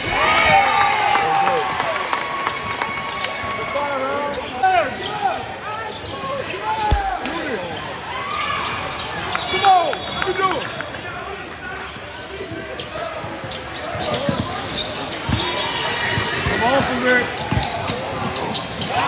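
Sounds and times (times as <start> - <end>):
voices in a hall: 0.0 - 19.0
sneakers squeaking: 4.0 - 9.5, 11.7 - 19.0
sharp knocks: 6.9 - 7.4
basketball bouncing: 6.9 - 7.6.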